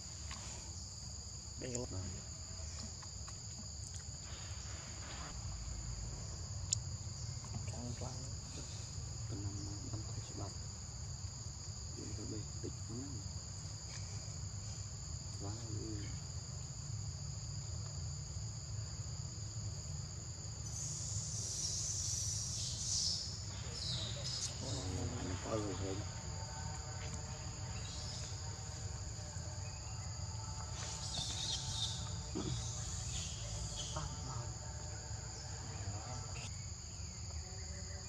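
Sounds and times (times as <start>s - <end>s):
insects droning: 0.0s - 38.0s.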